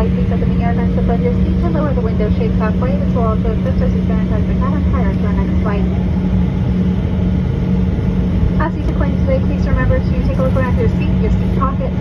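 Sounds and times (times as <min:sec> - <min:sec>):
jet cabin drone: 0:00.0 - 0:12.0.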